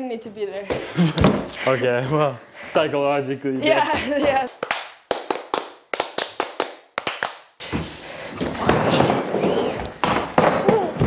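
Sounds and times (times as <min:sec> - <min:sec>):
skateboard wheels rolling on wooden ramp: 0:07.8 - 0:11.0.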